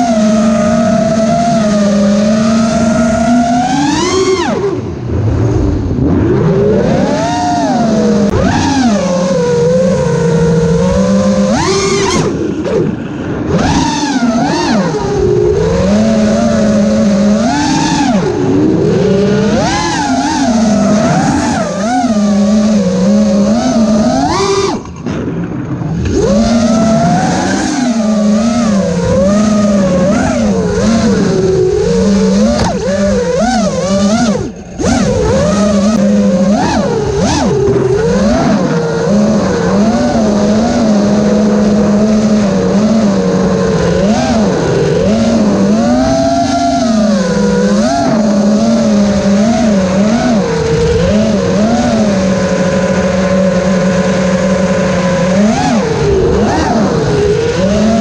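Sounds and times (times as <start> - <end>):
drone motors whining: 0.0 - 58.0.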